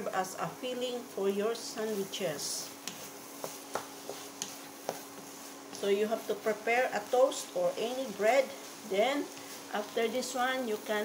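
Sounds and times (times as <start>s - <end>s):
faint sizzle: 0.0s - 11.0s.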